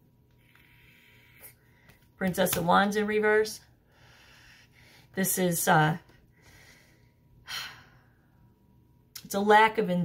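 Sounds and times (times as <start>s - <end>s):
woman breathing in: 0.4s - 2.0s, 3.8s - 5.2s, 6.3s - 8.5s
woman speaking: 2.2s - 3.7s, 5.2s - 6.1s, 9.2s - 10.0s.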